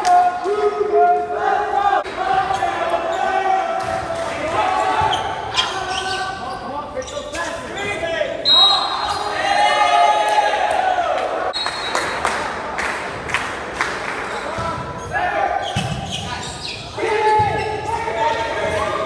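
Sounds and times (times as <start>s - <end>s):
players shouting: 0.0s - 6.5s, 7.7s - 11.6s, 14.4s - 19.0s.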